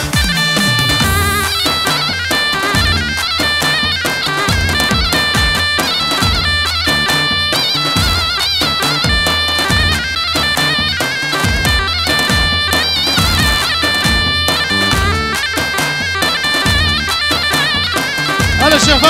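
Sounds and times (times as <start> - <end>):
reedy keyboard melody: 0.0 - 19.0
steady drum beat: 0.0 - 19.0.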